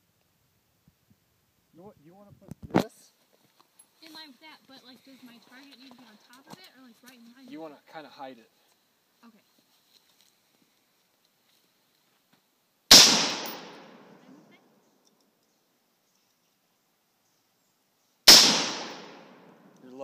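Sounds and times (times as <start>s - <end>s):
rifle shots with echo: 12.9s - 14.2s, 18.3s - 19.7s.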